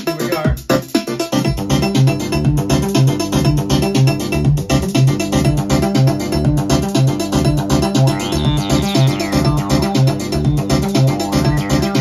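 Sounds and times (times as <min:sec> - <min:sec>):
electronic percussion: 0:00.0 - 0:12.0
synthesizer bass line: 0:00.0 - 0:12.0.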